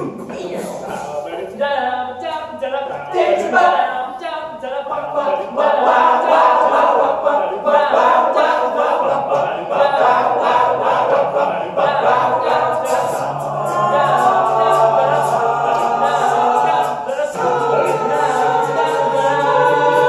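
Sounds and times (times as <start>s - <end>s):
a cappella group singing: 0.0s - 20.0s.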